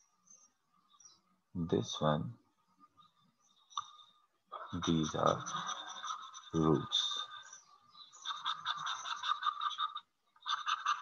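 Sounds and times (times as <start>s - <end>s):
stylus scratching on tablet: 3.9s - 11.0s.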